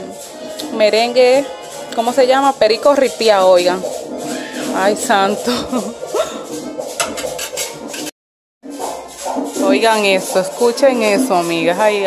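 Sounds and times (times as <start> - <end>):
guira scraping a fast rhythm: 0.0 - 12.0
merengue music from a house: 0.0 - 12.0.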